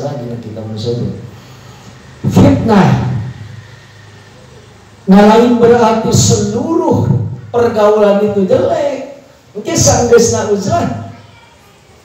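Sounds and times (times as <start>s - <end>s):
man speaking into a microphone: 0.0s - 1.4s, 2.2s - 3.4s, 5.0s - 11.2s.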